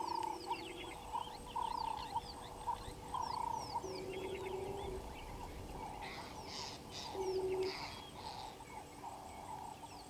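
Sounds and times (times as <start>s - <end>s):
birds warbling: 0.0s - 10.0s.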